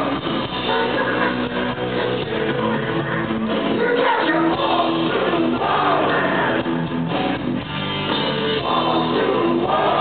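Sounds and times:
distorted electric guitars: 0:00.0 - 0:10.0
drum kit: 0:00.0 - 0:10.0.

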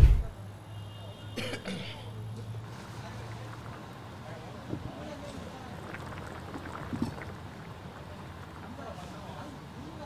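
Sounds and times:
person coughing: 0:01.4 - 0:02.0.

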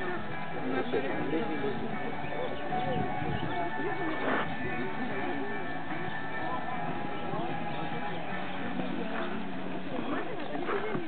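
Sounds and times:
indistinct voices: 0:00.0 - 0:11.0
faint horse hoofbeats on sand: 0:10.0 - 0:11.0.

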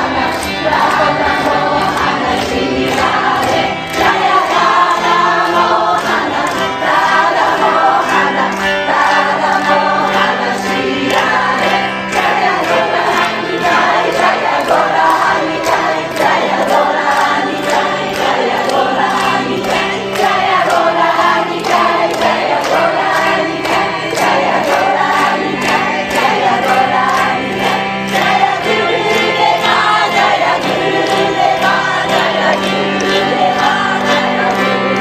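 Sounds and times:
group chanting a devotional song: 0:00.0 - 0:35.0
handclaps: 0:00.0 - 0:35.0
harmonium drone: 0:00.0 - 0:35.0.

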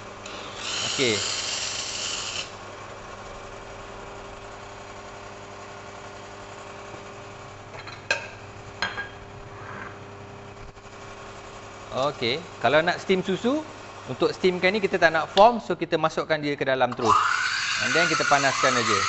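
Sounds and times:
espresso machine humming: 0:00.0 - 0:15.4, 0:17.0 - 0:19.0.

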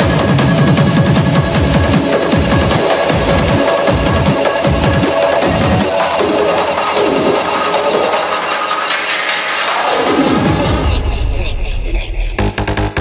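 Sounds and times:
kick drum: 0:00.0 - 0:06.5
synth lines with falling sweep: 0:00.0 - 0:10.9
hardcore techno music: 0:00.0 - 0:13.0.

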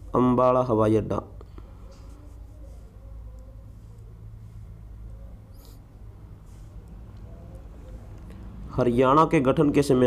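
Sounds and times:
low background hum: 0:00.0 - 0:10.0.

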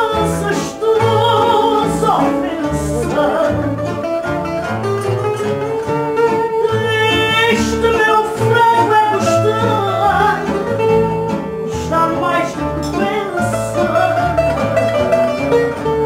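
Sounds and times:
woman singing: 0:00.0 - 0:04.2, 0:06.2 - 0:14.9
plucked guitar: 0:00.0 - 0:16.0.

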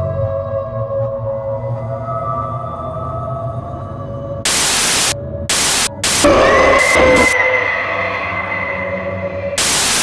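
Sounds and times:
ambient music drone: 0:00.0 - 0:10.0
white-noise static bursts: 0:04.5 - 0:07.3, 0:09.6 - 0:10.0
high rising whine: 0:04.5 - 0:10.0.

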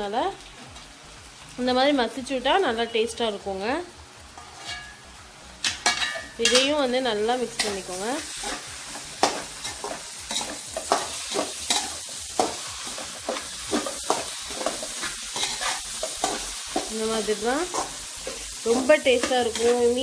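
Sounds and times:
light sizzling: 0:00.0 - 0:20.0
spatula scraping a metal pan: 0:04.4 - 0:05.0, 0:07.6 - 0:20.0.

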